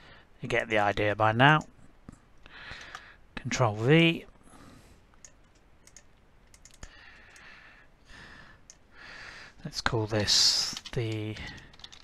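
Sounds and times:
faint keyboard clicks: 1.6s - 3.1s, 5.2s - 7.5s, 10.6s - 12.0s
mouse clicks: 5.2s - 7.5s.

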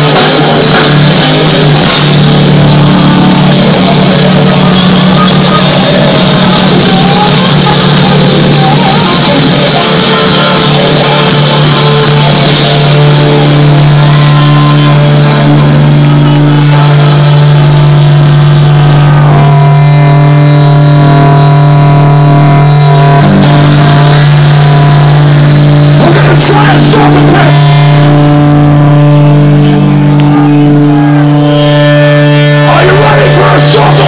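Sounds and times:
distorted electric guitars and bass: 0.0s - 34.0s.

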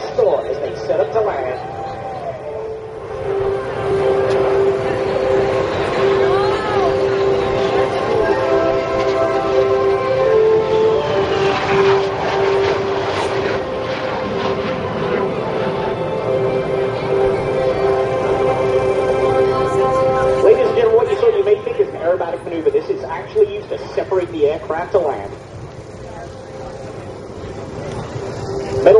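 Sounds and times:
jet engines passing overhead: 0.0s - 28.9s.

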